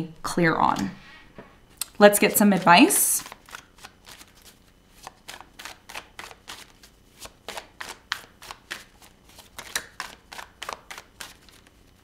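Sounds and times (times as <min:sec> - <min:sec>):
cards being shuffled: 0:02.6 - 0:12.0.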